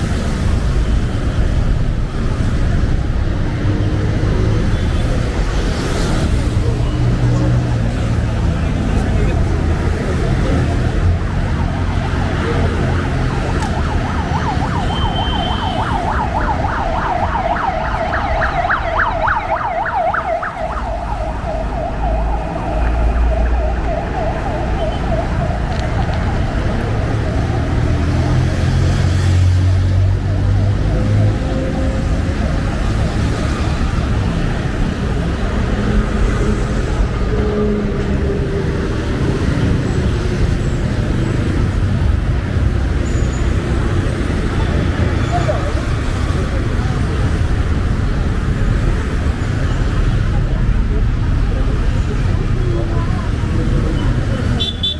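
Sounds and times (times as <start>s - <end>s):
cars and motorbikes passing: 0.0s - 54.9s
siren warbling: 11.5s - 27.6s.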